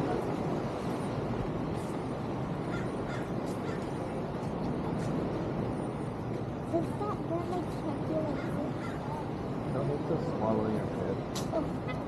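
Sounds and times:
crow-like caws: 2.6 - 4.0, 8.4 - 9.1
people's voices: 6.7 - 12.0.

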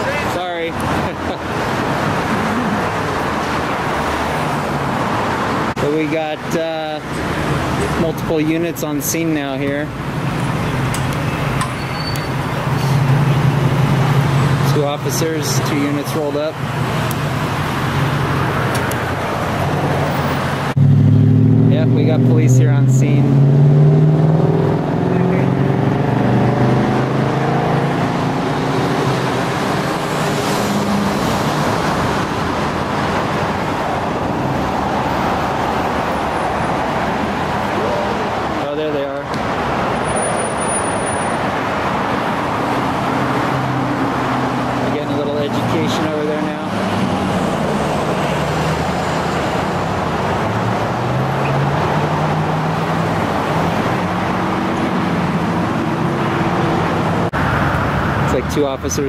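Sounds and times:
indistinct voices talking: 0.0 - 4.6
cars passing: 0.0 - 59.0.

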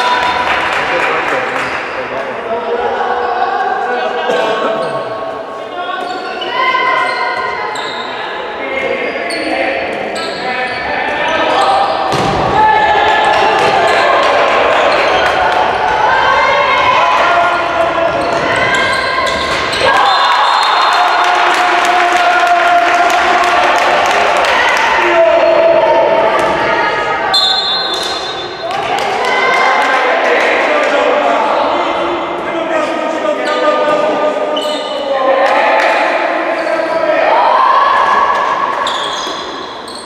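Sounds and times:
players calling: 0.0 - 40.0
ball bouncing on court: 12.1 - 12.6.

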